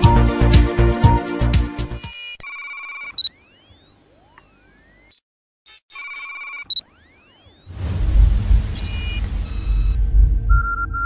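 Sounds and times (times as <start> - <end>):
intro music with strong beat: 0.0 - 2.0
warbling electronic beep: 2.0 - 7.9, 8.7 - 11.0.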